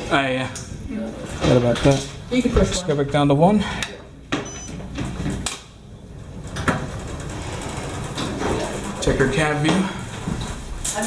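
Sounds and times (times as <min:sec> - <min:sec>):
low rumble in elevator cab: 0:05.9 - 0:10.6
elevator doors sliding shut: 0:06.1 - 0:11.0.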